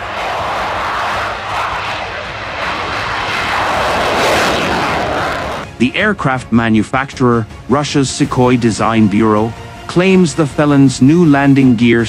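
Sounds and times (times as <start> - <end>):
jet engines at high thrust: 0.0 - 5.7.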